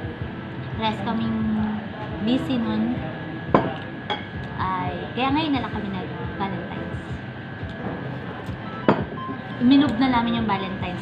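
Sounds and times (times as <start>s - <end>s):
cafe room noise: 0.0s - 11.0s
soft background music: 0.0s - 11.0s.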